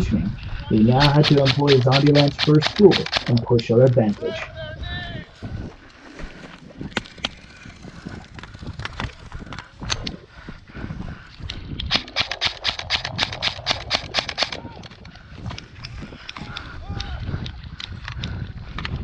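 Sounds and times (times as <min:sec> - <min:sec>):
fast string of sharp clicks: 0:00.8 - 0:03.6, 0:11.8 - 0:14.6
rattling kit: 0:00.9 - 0:03.4, 0:11.9 - 0:14.6.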